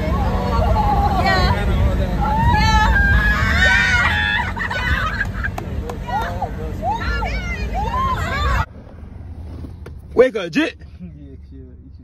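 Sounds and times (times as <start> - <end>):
young people hollering: 0.0 - 8.7
crowd noise: 0.0 - 10.6.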